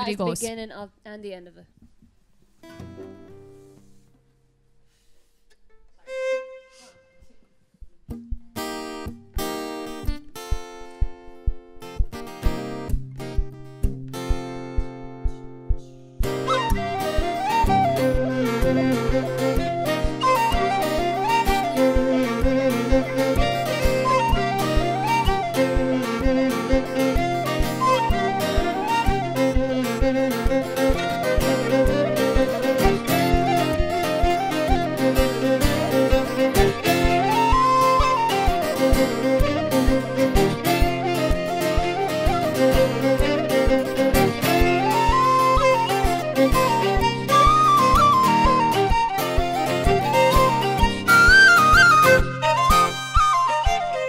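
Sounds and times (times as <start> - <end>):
strummed acoustic guitar: 2.6 - 5.0, 8.0 - 54.0
fiddle: 6.0 - 7.3, 16.5 - 54.0
tin whistle melody: 16.5 - 54.0.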